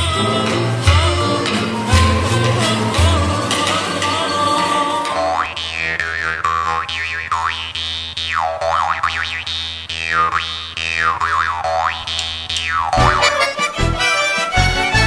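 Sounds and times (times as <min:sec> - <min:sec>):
jaw harp music: 0:00.0 - 0:15.0.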